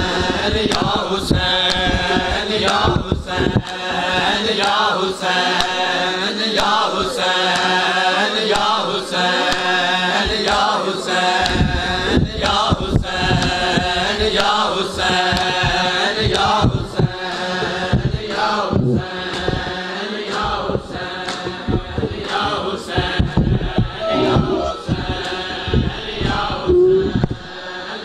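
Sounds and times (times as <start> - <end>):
hands slapping chests: 0.0 - 4.8, 6.6 - 7.7, 8.6 - 8.9, 9.5 - 10.8, 11.4 - 27.6.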